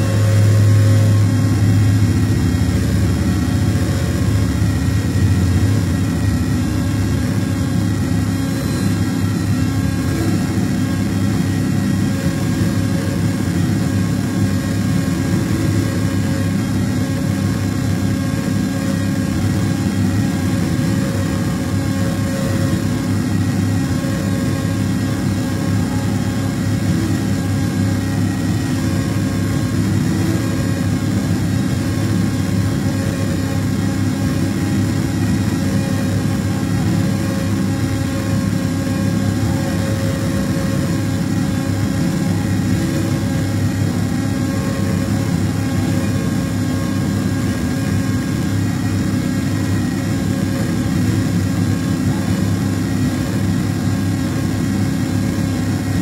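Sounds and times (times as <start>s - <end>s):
low noise rumble: 0.0s - 56.0s.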